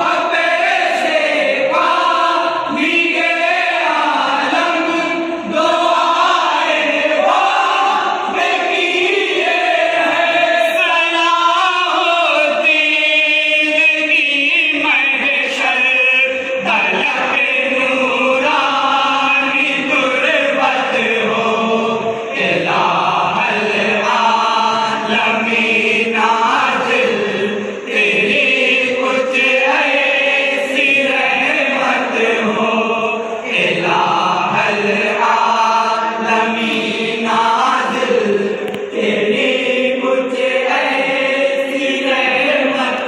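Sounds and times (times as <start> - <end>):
men singing in chorus: 0.0 - 43.0.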